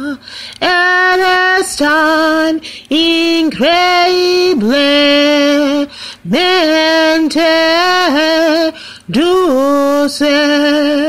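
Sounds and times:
woman singing unaccompanied: 0.0s - 11.0s
singer breathing: 0.2s - 0.6s, 2.6s - 2.9s, 5.9s - 6.3s, 8.7s - 9.1s.

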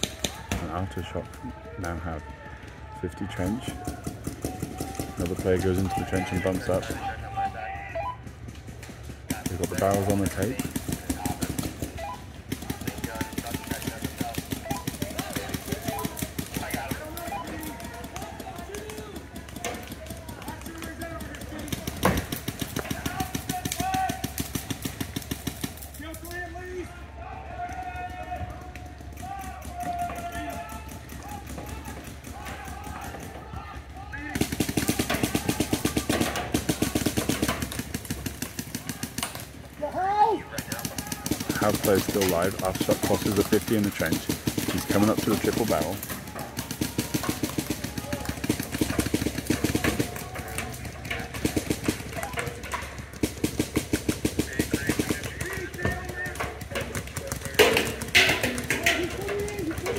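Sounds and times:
paintball markers firing: 0.0s - 7.2s, 8.2s - 26.6s, 27.6s - 39.7s, 40.4s - 59.9s
voices: 0.0s - 59.9s.

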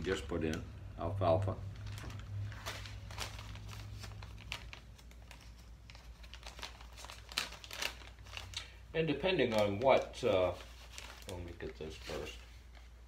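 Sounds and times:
plastic bag crinkling: 1.6s - 13.0s.

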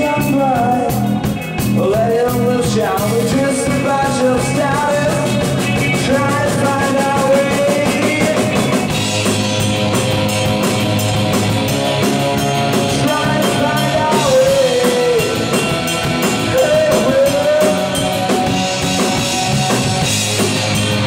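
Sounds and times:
man singing: 0.0s - 9.0s, 12.8s - 19.2s
rock band playing live: 0.0s - 21.0s.

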